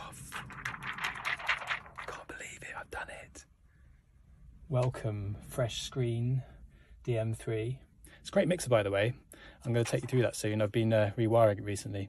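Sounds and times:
man whispering excitedly: 2.0 - 3.5.

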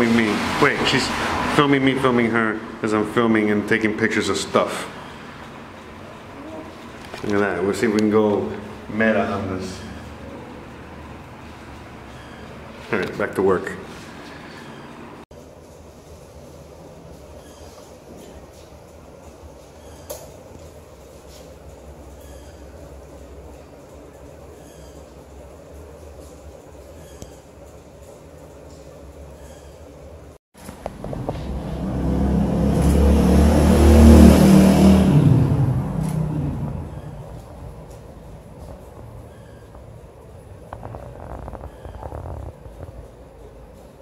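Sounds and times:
heavy vehicle rumbling past: 0.0 - 5.8, 30.7 - 43.9.

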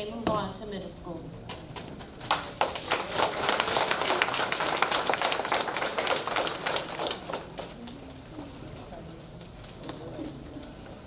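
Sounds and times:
audience applauding: 2.3 - 7.8.

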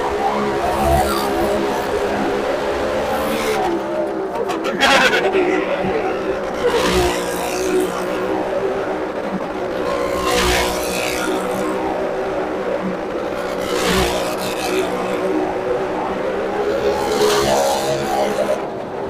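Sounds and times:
motorcycle engine running hard: 0.0 - 19.0.

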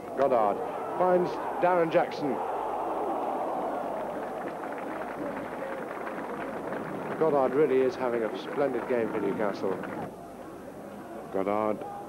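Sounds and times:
football crowd roaring: 0.1 - 12.0.

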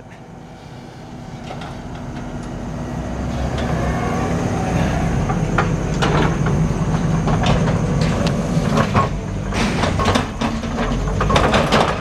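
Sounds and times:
diesel engine running: 0.0 - 12.0
tracks rattling: 0.0 - 12.0
sharp metallic clanks: 8.8 - 12.0.

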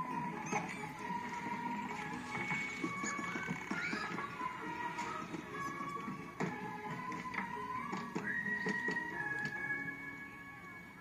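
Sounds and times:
orchestral music from tv speaker: 0.0 - 11.0.

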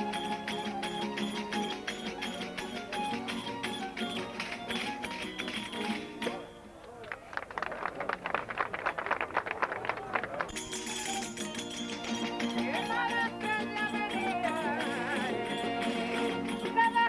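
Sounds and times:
violin and guitars: 0.0 - 6.8, 10.5 - 17.0
tambourine rhythm: 10.5 - 17.0.

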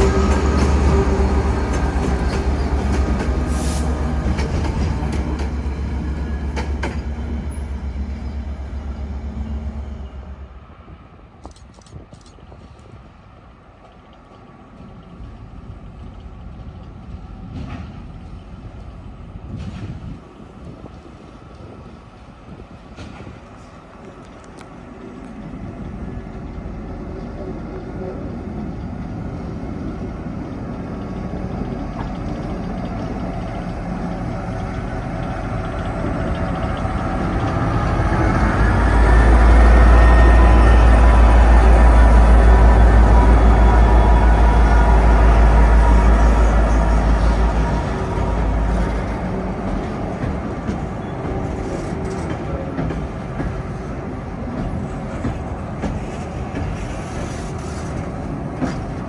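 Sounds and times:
diesel locomotive engine rumble: 0.0 - 59.0.

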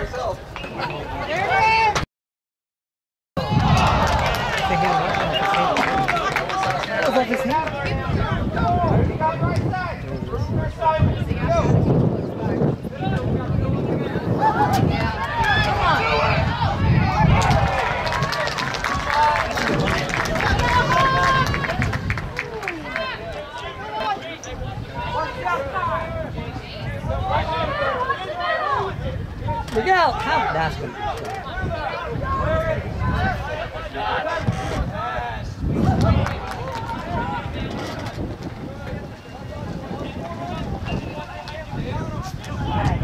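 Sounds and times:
voices calling out: 0.0 - 2.0, 3.4 - 43.0
people shouting outdoors: 0.8 - 2.0, 3.4 - 11.7, 14.2 - 37.7.

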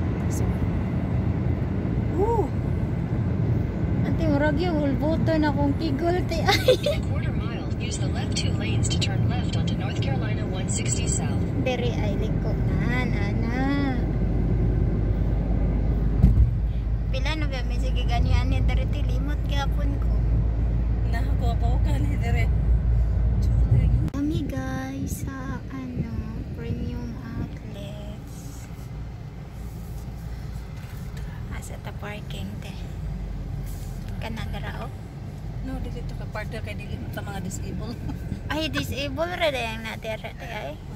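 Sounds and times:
car road noise rumble: 0.0 - 40.9
voices: 4.0 - 14.2, 23.4 - 28.9, 34.1 - 40.9.

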